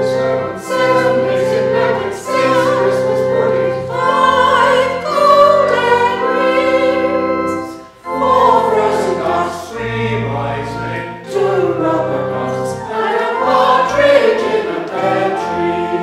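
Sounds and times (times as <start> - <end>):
church choir singing: 0.0 - 16.0.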